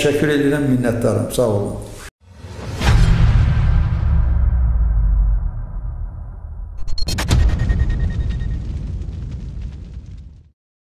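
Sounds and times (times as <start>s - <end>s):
low rumbling boom: 2.4s - 10.5s.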